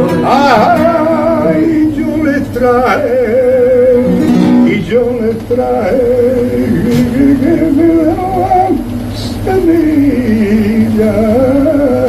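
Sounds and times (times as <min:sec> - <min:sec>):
man singing flamenco: 0:00.0 - 0:12.0
strummed flamenco guitar: 0:00.0 - 0:12.0.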